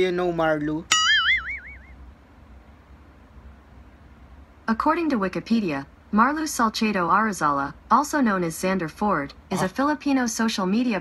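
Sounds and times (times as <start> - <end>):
cartoon boing: 0.9 - 1.9.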